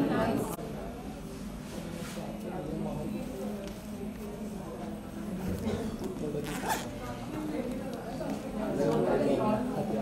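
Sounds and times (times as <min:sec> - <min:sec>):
background chatter of voices: 0:00.0 - 0:10.0.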